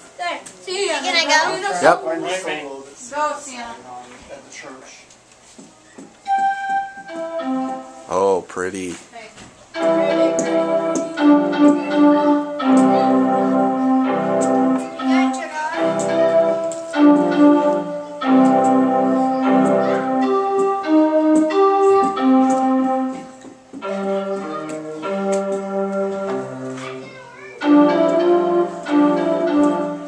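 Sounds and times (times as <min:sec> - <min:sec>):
digital piano playing: 0:06.2 - 0:08.5, 0:09.8 - 0:30.0.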